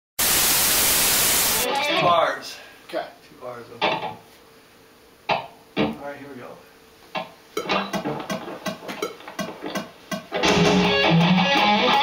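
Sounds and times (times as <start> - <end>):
loud static hiss: 0.2 - 12.0.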